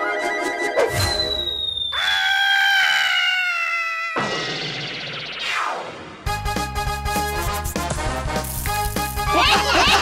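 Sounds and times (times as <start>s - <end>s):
music: 0.0s - 1.6s, 6.2s - 10.0s
falling cartoon whistle: 0.9s - 5.4s
cartoon fox screaming: 2.0s - 4.4s.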